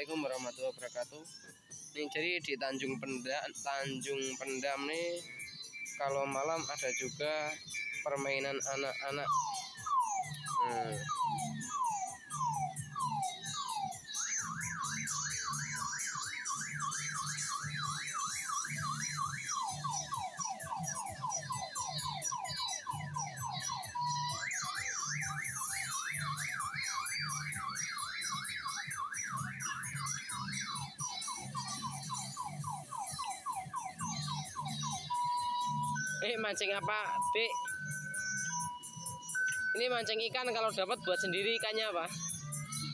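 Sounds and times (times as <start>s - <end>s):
electronic siren alarm: 0.0s - 42.9s.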